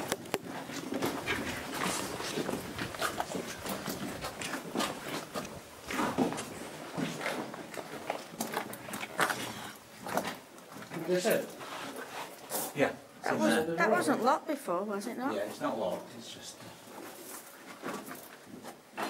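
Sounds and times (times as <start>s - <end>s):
footsteps in a cave tunnel: 0.0s - 12.6s, 16.5s - 19.0s.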